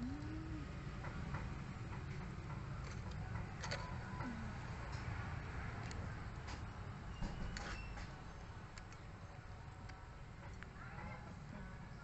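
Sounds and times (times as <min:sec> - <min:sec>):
low background rumble: 0:00.0 - 0:04.8.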